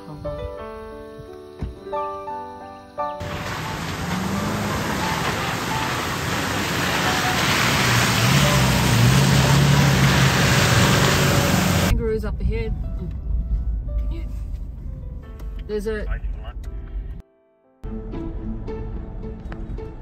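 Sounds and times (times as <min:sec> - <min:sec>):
tyres splashing on muddy track: 0:03.2 - 0:11.9
vehicle engine: 0:03.2 - 0:12.1
voices inside vehicle cabin: 0:15.6 - 0:17.2.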